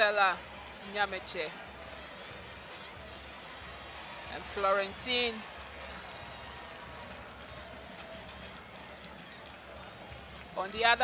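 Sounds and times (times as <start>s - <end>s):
distant stadium noise: 0.0s - 11.0s.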